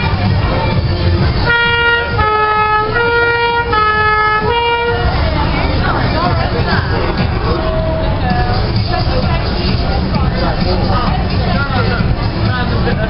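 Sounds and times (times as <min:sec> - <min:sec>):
crowd and street noise: 0:00.0 - 0:13.0
two-tone emergency vehicle horn: 0:01.4 - 0:05.2.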